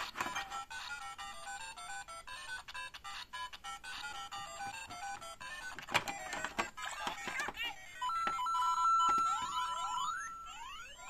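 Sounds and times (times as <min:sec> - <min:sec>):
plastic clicks: 0:04.8 - 0:07.6
electronic toy jingles and beeps: 0:08.0 - 0:11.0.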